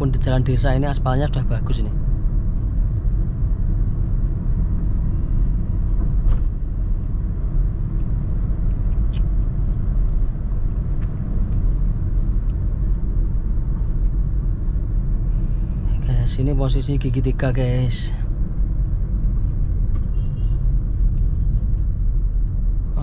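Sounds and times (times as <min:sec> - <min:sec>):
car engine and road noise: 0:00.0 - 0:23.0.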